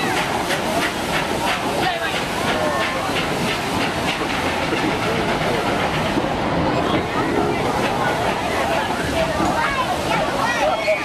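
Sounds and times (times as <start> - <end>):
carriages rolling rhythmically: 0.0 - 11.0
steam train passing: 0.0 - 11.0.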